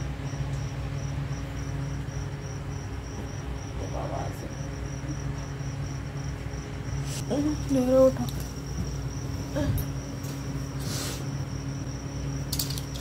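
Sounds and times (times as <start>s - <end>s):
cricket chirping: 0.0s - 13.0s
steady low hum: 0.0s - 13.0s.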